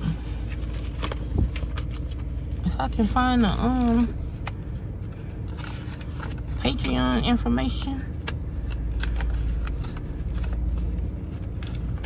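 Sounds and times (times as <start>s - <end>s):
car engine running: 0.0s - 12.0s
paper rustling: 8.1s - 12.0s.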